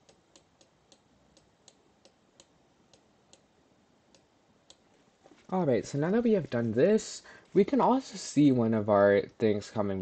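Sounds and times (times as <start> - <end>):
faint irregular clicks: 0.0 - 3.5, 4.1 - 5.0.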